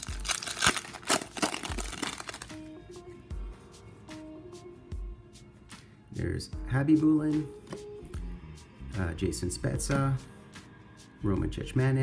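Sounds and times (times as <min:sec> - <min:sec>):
wrapper crinkling: 0:00.0 - 0:02.6.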